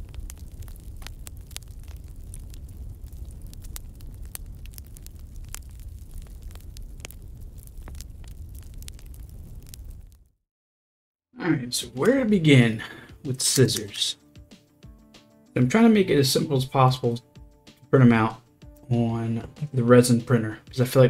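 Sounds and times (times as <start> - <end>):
bonfire roaring: 0.0 - 10.3
crackles and pops of burning logs: 0.0 - 10.3, 12.8 - 14.5.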